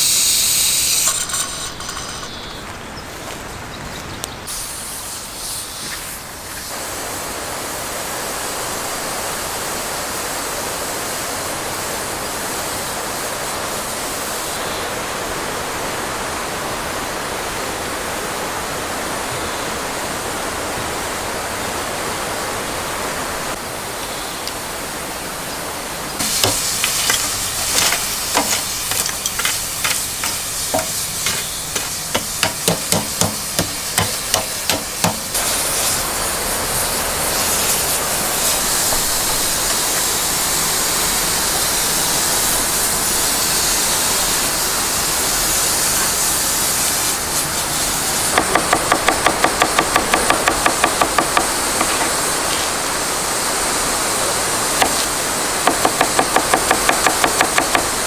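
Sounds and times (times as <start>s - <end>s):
steady rushing noise: 24.8s - 56.0s
sausages sizzling on a grill: 26.2s - 32.7s, 33.3s - 48.4s
charcoal clinking and knocking: 26.2s - 35.4s.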